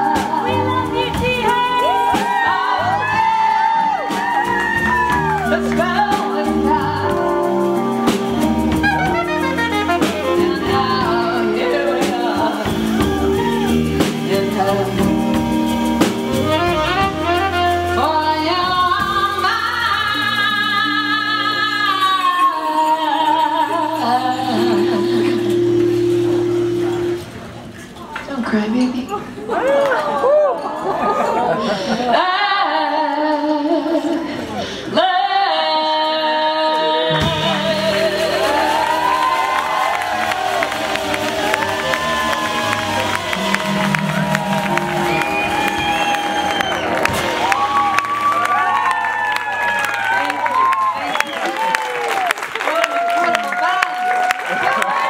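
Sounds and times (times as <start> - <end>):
audience cheering and whooping: 1.4 - 6.1, 12.6 - 14.2, 29.5 - 31.6, 37.4 - 55.0
jazz band holding a chord: 4.1 - 27.6, 37.0 - 50.5
audience clapping: 37.4 - 55.0
low bass note: 40.9 - 46.4.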